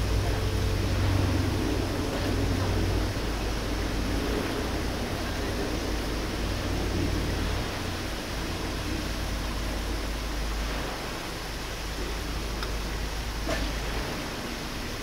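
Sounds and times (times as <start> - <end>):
low rumble: 0.0 - 14.9.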